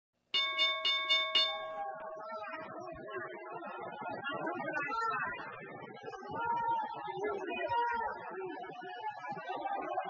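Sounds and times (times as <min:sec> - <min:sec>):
bell ringing: 0:00.4 - 0:01.8.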